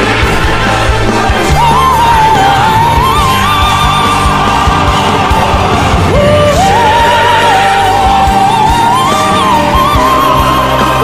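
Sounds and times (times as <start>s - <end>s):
man singing with vibrato: 6.1s - 11.0s.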